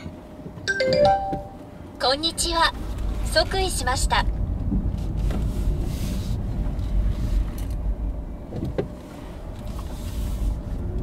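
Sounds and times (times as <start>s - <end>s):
car engine and road rumble: 0.0s - 11.0s.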